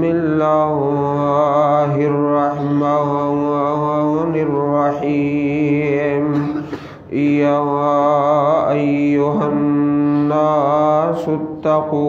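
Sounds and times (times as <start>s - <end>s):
man chanting over loudspeaker: 0.0s - 12.0s.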